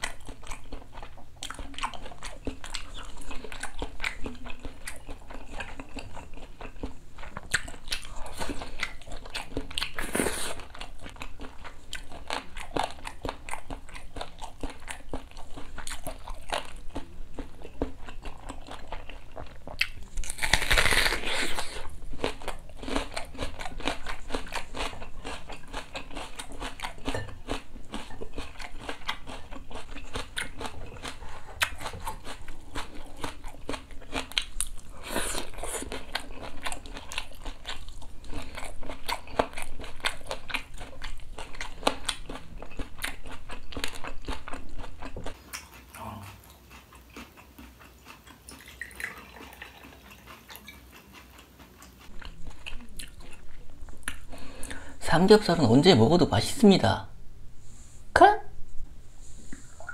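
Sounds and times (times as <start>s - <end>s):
crunchy chewing: 0.0s - 54.9s
teeth biting into raw onion: 18.5s - 27.0s.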